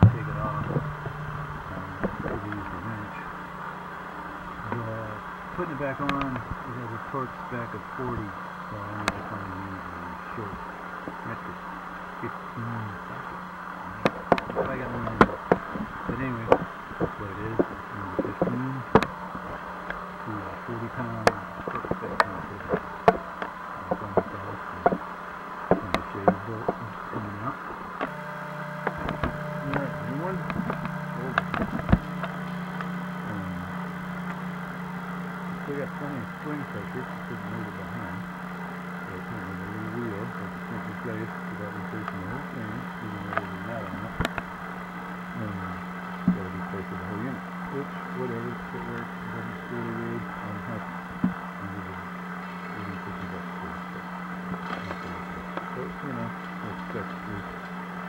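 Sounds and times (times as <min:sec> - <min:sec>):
faint indistinct talk: 0:00.0 - 0:03.4, 0:04.2 - 0:19.0, 0:20.2 - 0:22.9, 0:23.8 - 0:25.0, 0:25.7 - 0:32.4, 0:33.0 - 0:34.0, 0:35.6 - 0:38.4, 0:39.0 - 0:44.4, 0:45.4 - 0:57.7
steady low hum: 0:00.0 - 0:58.0.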